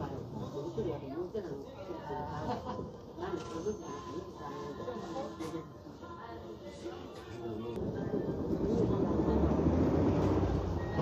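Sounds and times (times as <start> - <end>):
road noise: 7.7 - 11.0
bus engine accelerating: 7.8 - 11.0.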